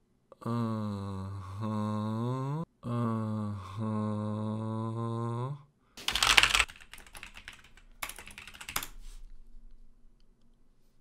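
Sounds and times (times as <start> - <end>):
typing on computer keyboard: 6.0 - 9.0.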